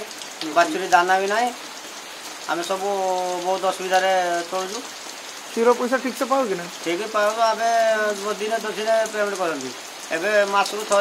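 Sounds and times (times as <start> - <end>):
steady rain falling: 0.0 - 11.0
man talking: 0.4 - 1.6, 2.5 - 4.8, 5.5 - 11.0.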